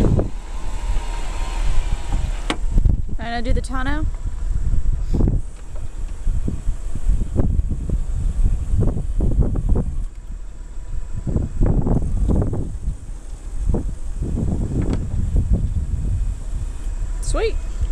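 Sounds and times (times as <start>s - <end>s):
steady low rumble: 0.0s - 17.9s.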